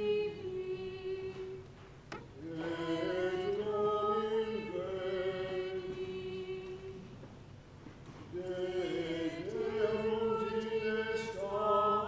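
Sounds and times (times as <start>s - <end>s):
voices singing chant: 0.0s - 1.6s, 2.4s - 7.1s, 8.3s - 12.0s.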